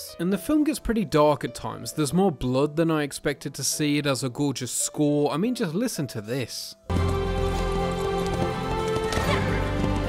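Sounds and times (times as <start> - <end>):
galloping horse hoofbeats: 6.9 - 10.0
orchestral music with held chords: 6.9 - 10.0.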